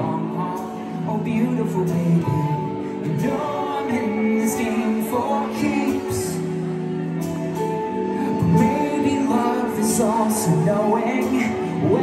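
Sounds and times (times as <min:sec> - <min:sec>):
electric guitars: 0:00.0 - 0:12.0
keyboard: 0:00.0 - 0:12.0
person singing: 0:00.0 - 0:12.0.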